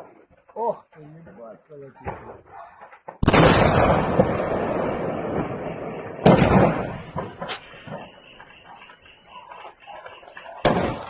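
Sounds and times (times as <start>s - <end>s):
ammunition explosions: 2.0s - 8.5s
loud blast with long tail: 3.2s - 8.8s, 10.3s - 11.0s.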